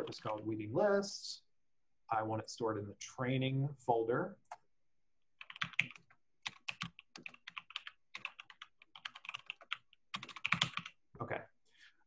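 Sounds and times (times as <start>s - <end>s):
typing on computer keyboard: 5.4s - 11.0s.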